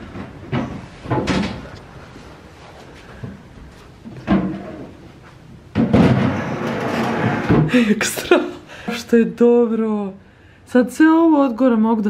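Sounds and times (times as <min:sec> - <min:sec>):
cabinet knocking and bumping: 0:00.0 - 0:01.6, 0:04.2 - 0:04.9, 0:05.7 - 0:07.7
cabinet scraping on tiled floor: 0:05.8 - 0:07.8.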